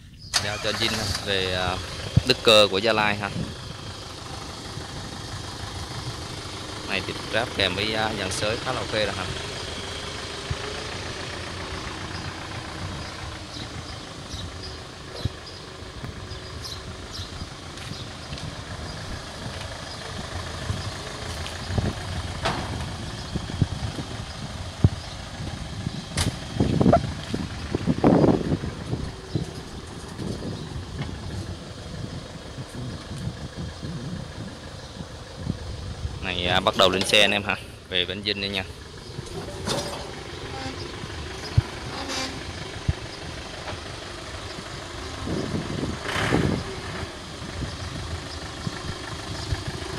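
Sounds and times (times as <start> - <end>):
tractor diesel engine idling: 0.0 - 49.9
sharp engine knocks: 21.4 - 23.0, 26.1 - 27.0.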